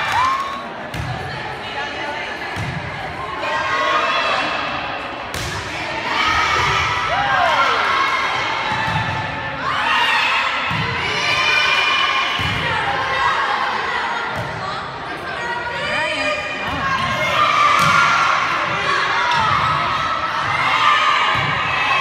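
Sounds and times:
people shouting and cheering: 0:00.0 - 0:22.0.

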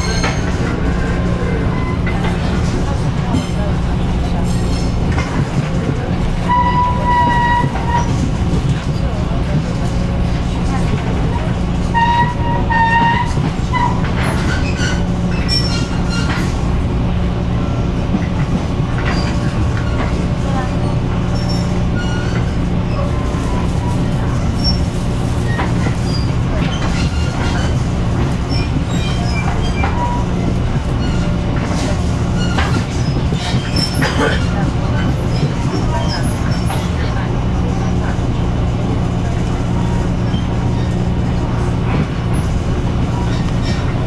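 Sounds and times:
train wheels rumbling on track: 0:00.0 - 0:44.0.

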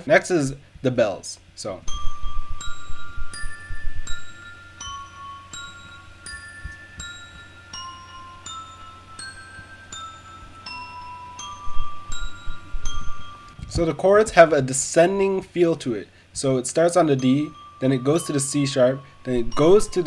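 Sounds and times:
glockenspiel arpeggio melody: 0:01.9 - 0:13.8, 0:17.0 - 0:20.0.

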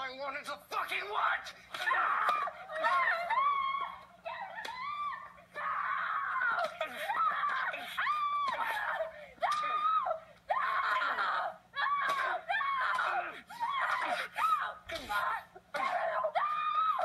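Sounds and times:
woman screaming and wailing: 0:01.8 - 0:17.0.

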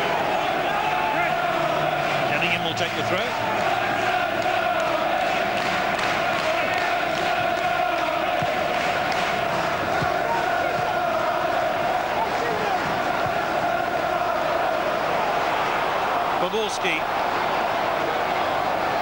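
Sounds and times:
stadium crowd chanting: 0:00.0 - 0:19.0.

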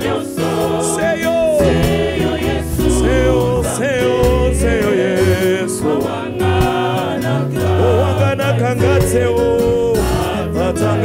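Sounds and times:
backing singers: 0:00.0 - 0:11.0
instrumental backing with bass: 0:00.0 - 0:11.0.

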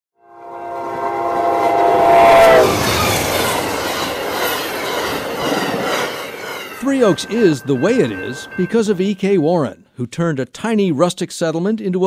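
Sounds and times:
train horn: 0:00.2 - 0:06.1
train rushing and rumbling past: 0:00.2 - 0:09.7.

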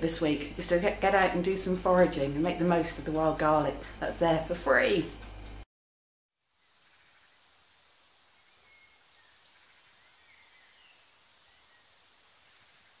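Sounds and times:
faint bird chirps: 0:06.5 - 0:07.6, 0:08.2 - 0:13.0
steady hiss: 0:06.5 - 0:13.0.

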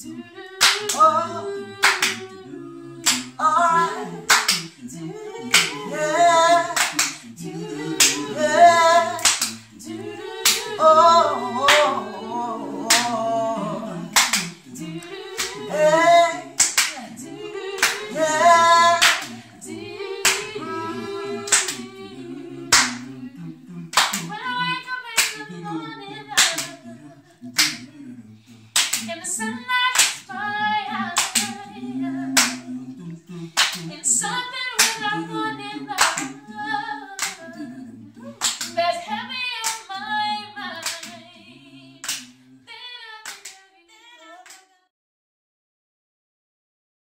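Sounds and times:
a cappella vocal group singing: 0:00.0 - 0:44.9
hand claps: 0:00.6 - 0:01.0, 0:01.8 - 0:02.3, 0:03.0 - 0:03.4, 0:04.3 - 0:04.8, 0:05.5 - 0:05.9, 0:06.7 - 0:07.2, 0:08.0 - 0:08.3, 0:09.2 - 0:09.6, 0:10.4 - 0:10.8, 0:11.7 - 0:11.9, 0:12.9 - 0:13.2, 0:14.1 - 0:15.7, 0:16.6 - 0:17.1, 0:17.8 - 0:18.2, 0:18.9 - 0:19.4, 0:20.2 - 0:20.6, 0:21.5 - 0:21.9, 0:22.7 - 0:23.1, 0:23.9 - 0:24.4, 0:25.2 - 0:25.5, 0:26.4 - 0:26.8, 0:27.6 - 0:27.8, 0:28.8 - 0:29.1, 0:29.9 - 0:30.3, 0:31.2 - 0:31.6, 0:32.4 - 0:32.6, 0:33.6 - 0:33.9, 0:34.8 - 0:35.1, 0:36.0 - 0:36.4, 0:37.2 - 0:37.4, 0:38.4 - 0:38.8, 0:40.8 - 0:41.2, 0:42.0 - 0:42.3, 0:43.2 - 0:43.6, 0:44.4 - 0:44.7.

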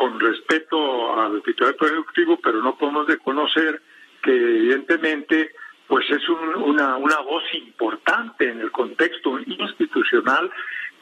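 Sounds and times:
man talking over telephone: 0:00.0 - 0:11.0.

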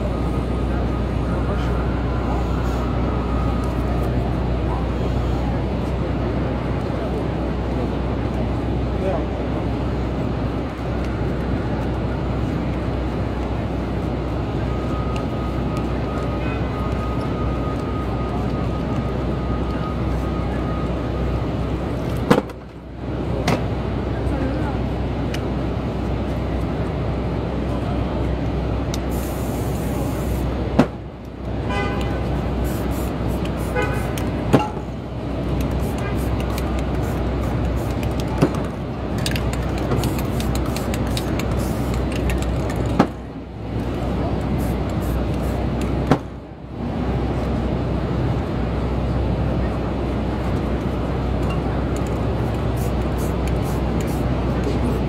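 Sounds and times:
murmur of voices: 0:00.0 - 0:22.2, 0:47.2 - 0:55.0
street traffic: 0:00.0 - 0:55.0.

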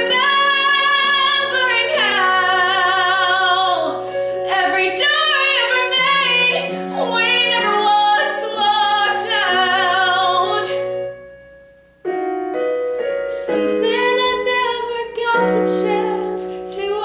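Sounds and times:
woman singing with vibrato: 0:00.0 - 0:11.0, 0:13.3 - 0:17.0
musical accompaniment: 0:00.0 - 0:17.0.

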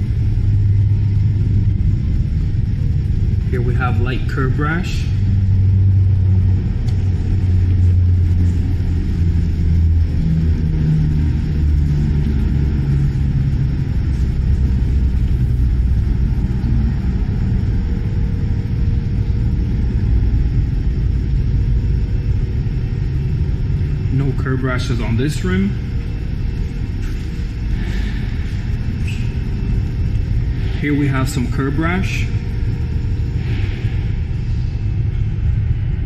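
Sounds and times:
low rumble with wavering hum: 0:00.0 - 0:36.0.

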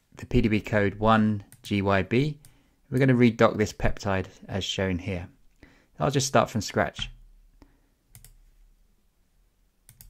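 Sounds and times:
computer mouse clicks: 0:08.1 - 0:08.4.

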